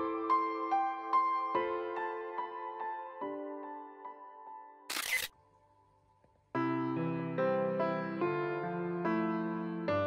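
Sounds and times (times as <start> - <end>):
soft piano music: 0.0 - 4.9, 6.5 - 10.0.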